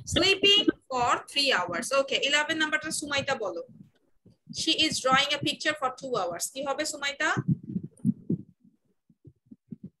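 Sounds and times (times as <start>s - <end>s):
muffled low thumps: 0.0s - 6.4s, 7.0s - 10.0s.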